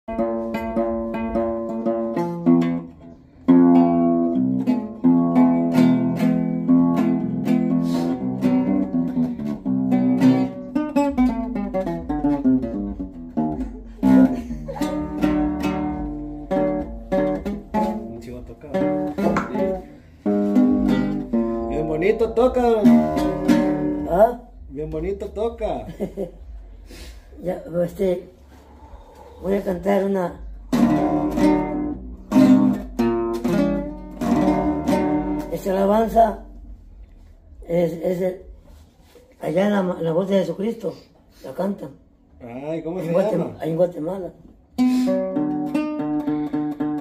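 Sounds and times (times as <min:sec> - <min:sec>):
acoustic guitar plucked melody: 0:00.0 - 0:41.0, 0:43.0 - 0:47.0.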